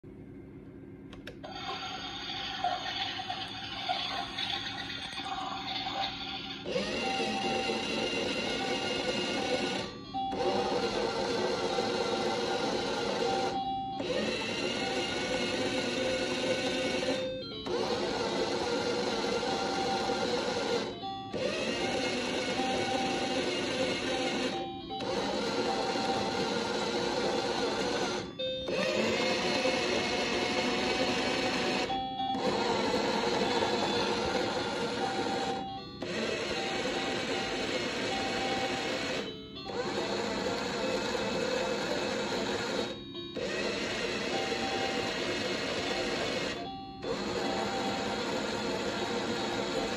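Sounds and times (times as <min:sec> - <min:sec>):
toy machine whirring: 0:01.3 - 0:49.9
electronic beeping jingle: 0:04.2 - 0:49.9.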